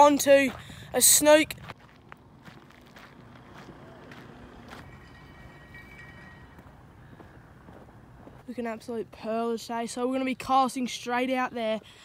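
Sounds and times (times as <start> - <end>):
faint footsteps on grassy sandy path: 0.0 - 10.0.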